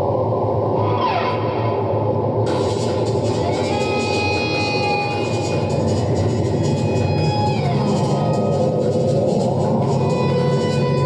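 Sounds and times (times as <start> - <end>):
electric guitar sustained notes: 3.2 - 11.0.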